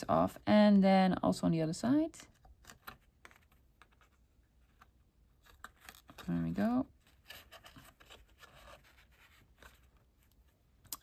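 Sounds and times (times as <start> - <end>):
rustling string and card: 2.2 - 11.0.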